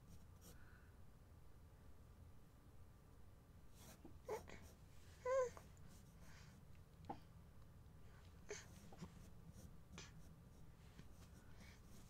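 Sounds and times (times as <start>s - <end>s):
baby babbling: 5.2s - 5.6s.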